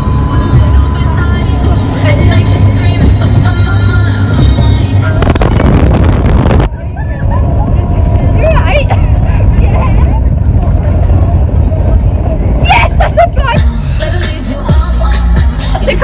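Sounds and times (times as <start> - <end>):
speedboat engine rumbling: 0.0 - 16.0.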